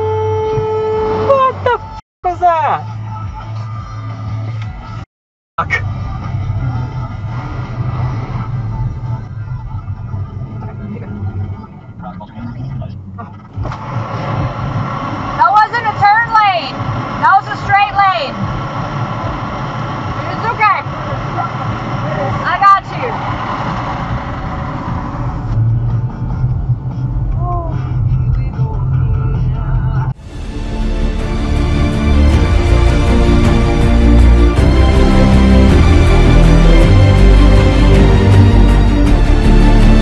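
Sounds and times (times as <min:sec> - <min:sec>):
car engine and road hum: 0:00.0 - 0:05.0, 0:05.6 - 0:40.0.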